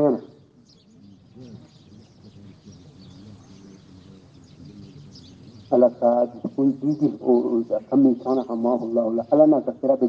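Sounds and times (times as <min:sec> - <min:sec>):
faint distant voices: 0:00.0 - 0:10.0
man's voice: 0:00.0 - 0:10.0
small birds chirping: 0:00.0 - 0:10.0.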